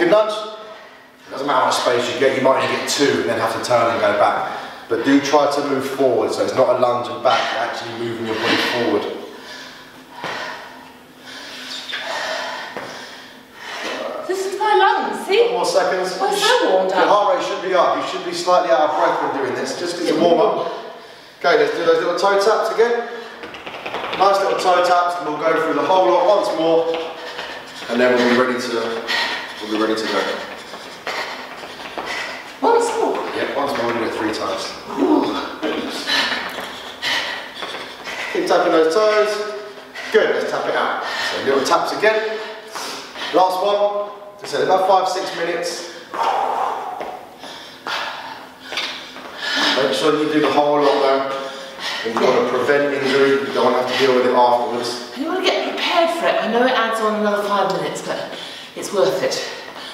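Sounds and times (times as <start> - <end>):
woman breathing hard: 7.3 - 14.3, 27.0 - 33.1, 34.8 - 38.6, 39.4 - 41.6, 42.2 - 43.4, 45.9 - 50.1, 50.8 - 54.4.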